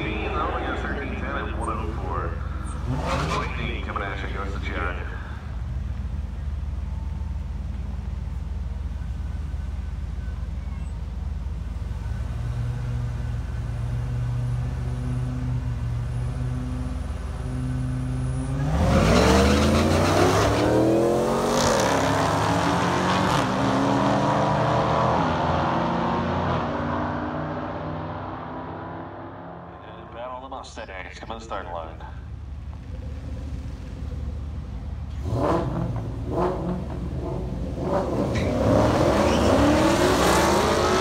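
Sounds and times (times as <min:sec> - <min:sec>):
car engines idling: 0:00.0 - 0:23.8, 0:28.9 - 0:41.0
cars accelerating at full throttle: 0:00.0 - 0:41.0.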